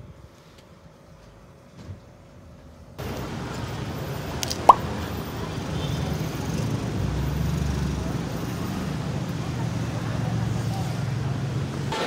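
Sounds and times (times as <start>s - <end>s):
road traffic rumble: 3.0s - 12.0s.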